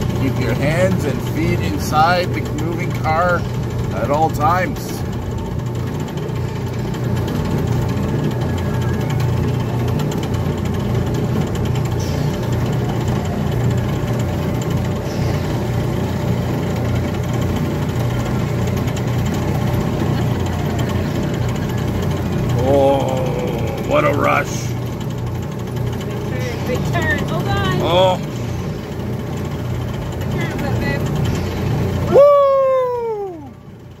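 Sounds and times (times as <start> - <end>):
light mechanical noise: 0.0 - 34.0
ride car engine hum: 0.0 - 34.0.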